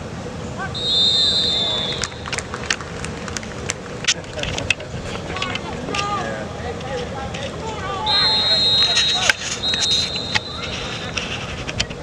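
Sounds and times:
distant voices and shouting: 0.4 - 2.5, 4.4 - 12.0.

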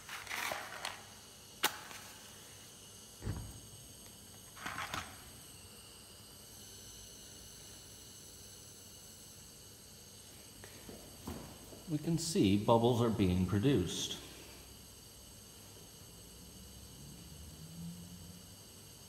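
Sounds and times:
burner flame hissing: 0.0 - 19.0
dull thump: 3.2 - 3.6.

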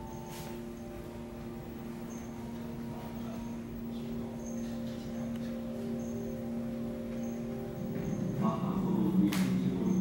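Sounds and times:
faint high chime pings: 0.0 - 10.0.

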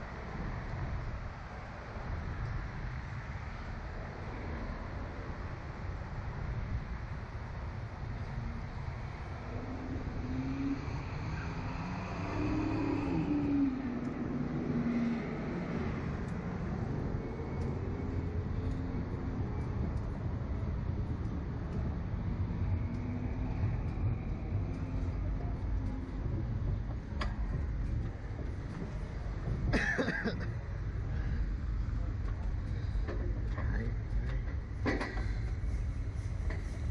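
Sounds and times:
wind buffeting microphone: 0.0 - 36.9.

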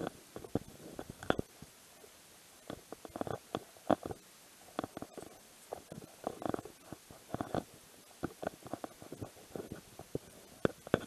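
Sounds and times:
clothing rubbing against microphone: 2.7 - 11.0.

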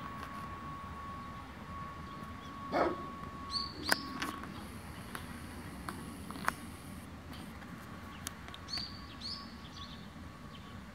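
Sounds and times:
faint steady high tone: 0.0 - 5.8
dog barking: 2.7 - 3.1
high bird chirp: 3.4 - 5.3, 8.1 - 10.7
sharp clicks: 3.8 - 6.6.

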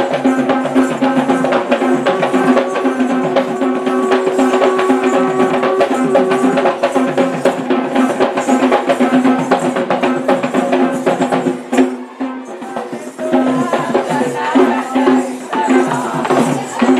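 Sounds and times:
drums beaten fast: 0.0 - 16.9
steady held note: 1.4 - 7.5.

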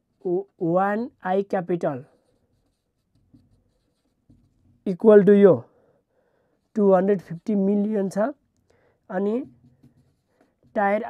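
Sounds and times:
marker scratching on whiteboard: 0.0 - 5.6, 6.6 - 8.4, 9.1 - 11.0.

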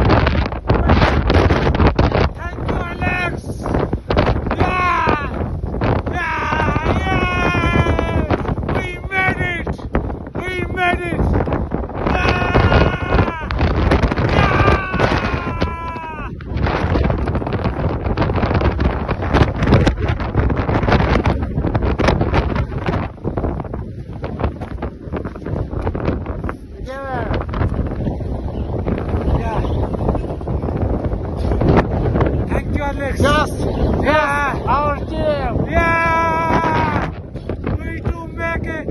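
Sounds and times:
wind buffeting microphone: 0.0 - 38.9
people calling out: 4.4 - 9.8, 12.0 - 16.4, 34.0 - 37.1.

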